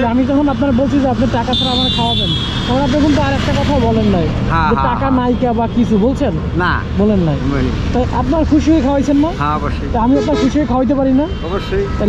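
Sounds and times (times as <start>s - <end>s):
men talking: 0.0s - 1.3s, 2.7s - 5.5s, 6.4s - 10.5s, 11.3s - 12.0s
road traffic rumble: 0.0s - 12.0s.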